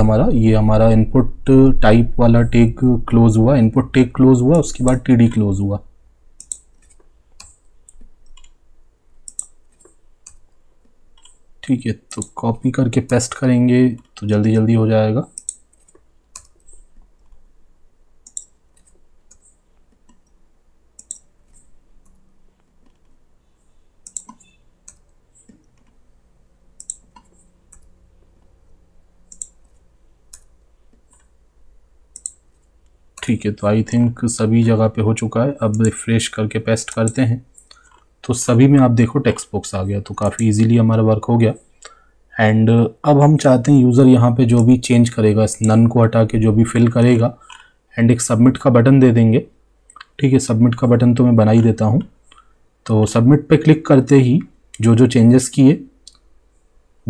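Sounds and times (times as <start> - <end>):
faint low hum: 0.0 - 57.0
computer keys clicking: 4.7 - 5.1, 6.4 - 8.6, 9.2 - 11.4, 12.1 - 14.6, 15.3 - 17.4, 18.2 - 20.4, 21.0 - 23.2, 24.0 - 26.0, 26.8 - 31.4, 32.1 - 33.4, 35.6 - 36.0, 36.8 - 38.1, 40.1 - 40.8.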